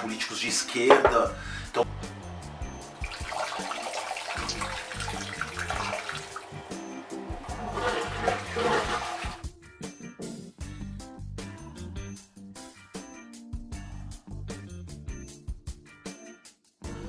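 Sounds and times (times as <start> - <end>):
background music with bass: 0.0 - 3.6, 4.4 - 17.0
toilet flushing: 2.7 - 9.5.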